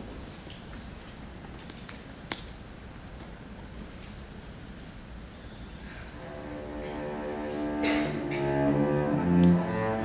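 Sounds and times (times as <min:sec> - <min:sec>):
low room hum: 0:05.8 - 0:10.0.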